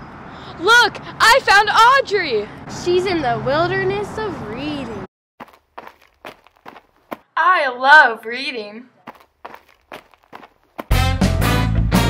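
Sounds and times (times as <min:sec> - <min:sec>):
running footsteps in sneakers: 0:05.4 - 0:07.2, 0:09.0 - 0:11.0
upbeat swing music: 0:10.9 - 0:12.0.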